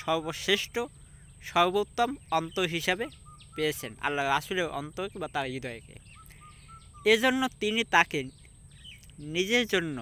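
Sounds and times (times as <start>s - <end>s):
man speaking: 0.0s - 6.1s, 7.0s - 8.4s, 9.1s - 10.0s
faint short bird chirps: 6.0s - 7.3s.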